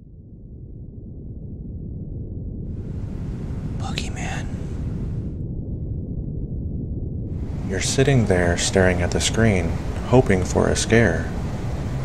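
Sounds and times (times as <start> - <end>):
dark low ambient drone: 0.0 - 12.0
breathy whisper: 3.1 - 4.9.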